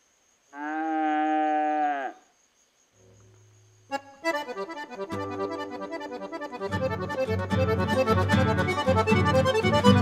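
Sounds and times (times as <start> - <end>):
cow mooing: 0.6 - 2.2.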